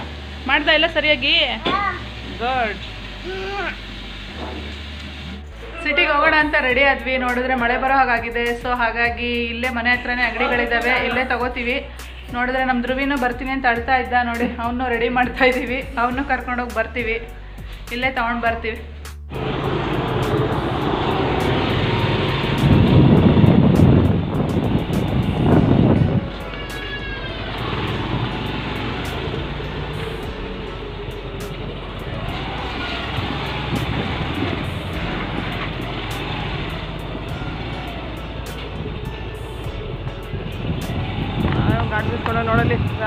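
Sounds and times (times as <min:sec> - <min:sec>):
motor scooter engine running: 0:19.3 - 0:43.0
wind on microphone: 0:20.4 - 0:26.5, 0:32.1 - 0:36.0, 0:38.7 - 0:43.0.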